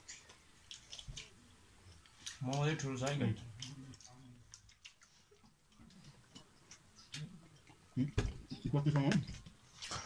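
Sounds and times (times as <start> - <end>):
mouth sounds while chewing: 0.0 - 2.5, 3.4 - 8.0.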